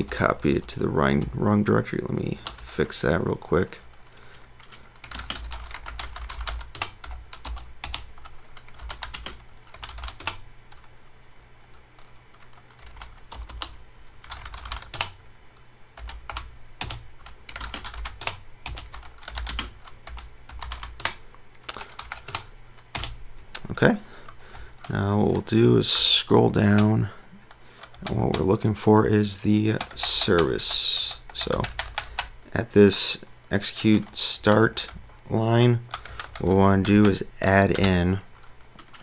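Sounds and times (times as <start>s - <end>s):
faint low hum: 0.0s - 39.0s
typing on computer keyboard: 4.6s - 10.9s, 12.0s - 15.2s, 16.0s - 23.2s, 27.5s - 28.5s, 29.8s - 32.3s, 35.9s - 39.0s.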